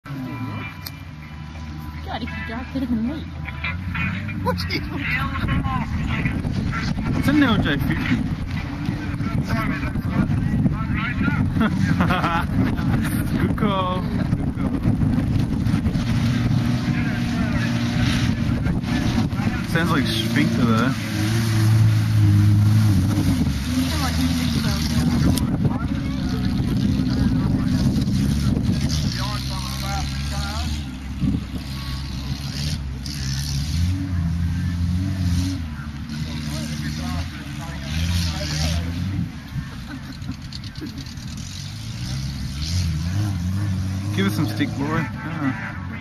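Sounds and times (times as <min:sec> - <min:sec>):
car engine running: 0:00.0 - 0:46.0
wind buffeting microphone: 0:05.0 - 0:19.9, 0:21.7 - 0:29.6, 0:30.9 - 0:31.8.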